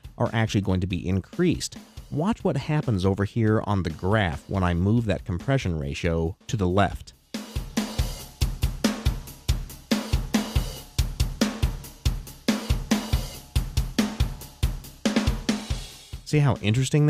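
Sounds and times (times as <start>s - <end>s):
drum kit playing a steady beat: 0.0s - 17.0s.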